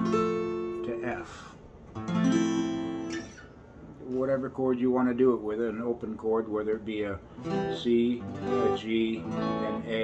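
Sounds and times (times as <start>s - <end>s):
acoustic guitar chords strummed: 0.0s - 1.2s, 1.9s - 3.6s, 7.3s - 10.0s.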